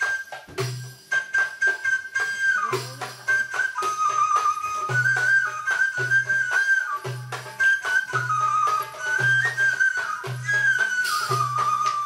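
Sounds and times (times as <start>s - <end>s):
percussion strokes: 0.0s - 12.0s
sustained high melody: 0.0s - 12.0s.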